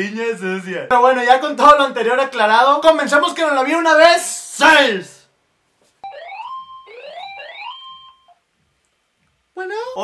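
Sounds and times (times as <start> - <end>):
phone ringtone rising tones: 6.0 - 8.4.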